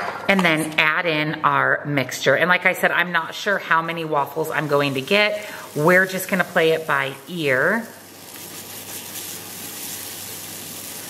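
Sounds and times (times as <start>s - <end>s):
waffle batter sizzling: 3.4s - 11.0s.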